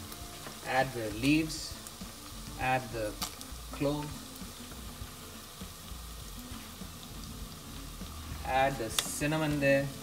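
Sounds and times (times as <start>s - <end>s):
onions sizzling in oil: 0.0s - 10.0s.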